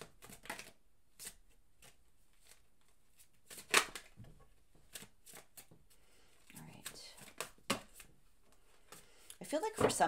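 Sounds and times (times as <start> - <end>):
cards tapping and rustling: 0.0 - 10.0.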